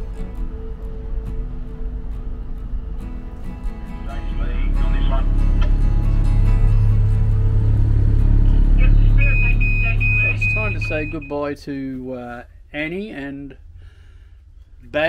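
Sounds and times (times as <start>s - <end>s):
boat engines droning: 0.0s - 11.6s
high electronic beep: 8.6s - 11.5s.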